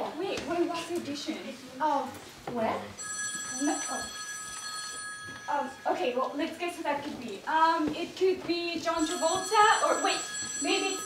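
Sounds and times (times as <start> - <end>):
telephone ringing: 3.0 - 6.6, 9.0 - 11.0.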